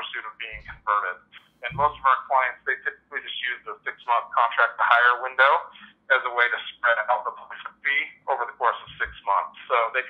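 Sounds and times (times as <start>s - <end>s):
person talking over phone line: 0.0s - 10.0s.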